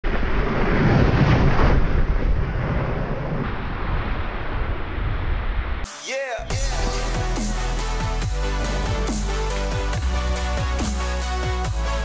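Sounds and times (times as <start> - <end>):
wind rushing over microphone: 0.0 - 5.9.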